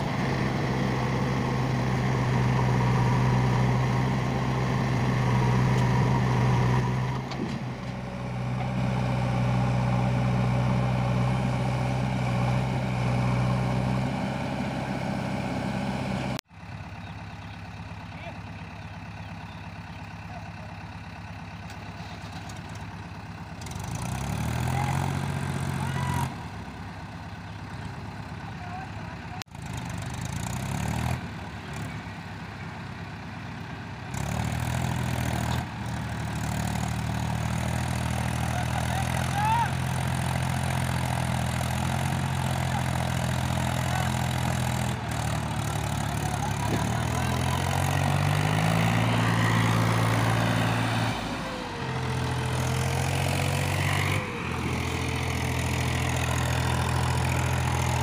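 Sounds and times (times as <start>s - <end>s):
engine revving: 0.0s - 16.4s, 23.6s - 26.6s, 29.4s - 32.0s, 34.1s - 58.0s
diesel engines running: 0.0s - 58.0s.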